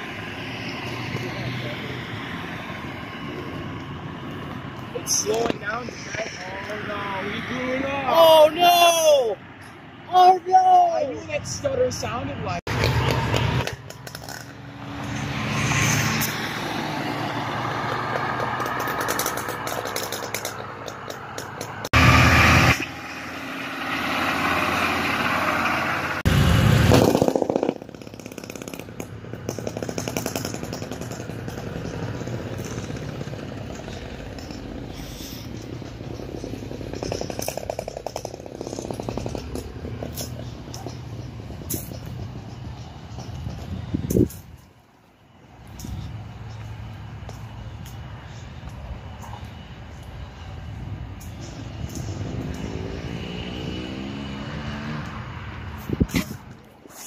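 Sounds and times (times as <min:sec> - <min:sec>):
cars driving along road: 0:00.0 - 0:57.0
tyre noise: 0:26.3 - 0:44.8, 0:50.4 - 0:57.0.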